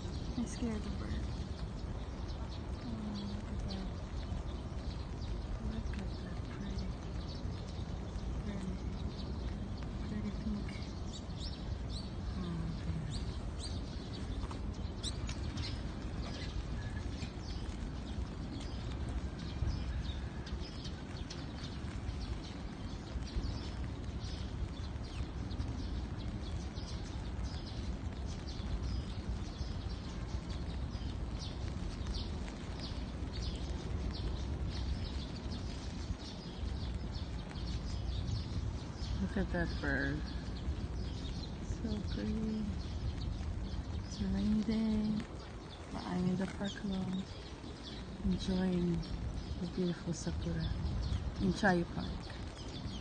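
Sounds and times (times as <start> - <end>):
birds chirping: 0.0 - 53.0
low background rumble: 0.0 - 53.0.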